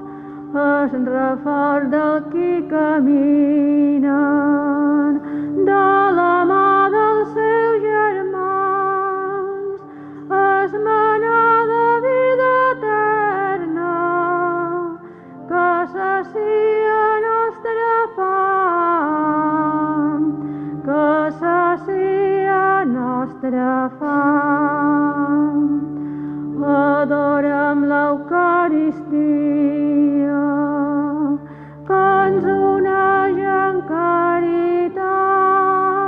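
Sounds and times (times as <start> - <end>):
solo voice singing sacred melody: 26.6 - 36.0.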